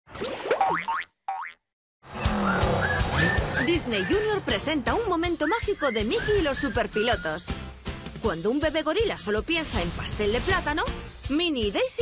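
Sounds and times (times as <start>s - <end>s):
upbeat jingle music: 2.8s - 12.0s
announcer speaking: 3.5s - 7.4s.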